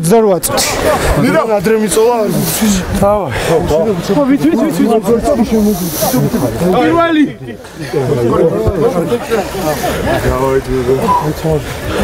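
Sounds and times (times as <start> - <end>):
man talking: 0.0 - 11.9.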